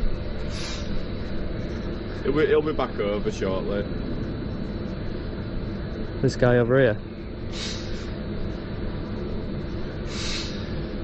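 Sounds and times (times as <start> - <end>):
faint high-pitched whine: 0.0 - 11.0
outdoor background rumble: 0.0 - 11.0.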